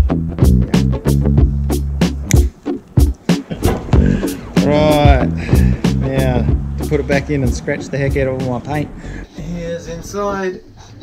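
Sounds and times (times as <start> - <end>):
music with drum beat and bass: 0.0 - 8.7.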